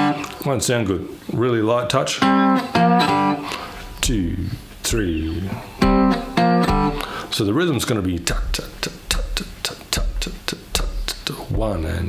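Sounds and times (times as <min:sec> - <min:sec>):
slide guitar picked notes: 0:00.0 - 0:00.5, 0:02.2 - 0:07.4, 0:08.2 - 0:11.4.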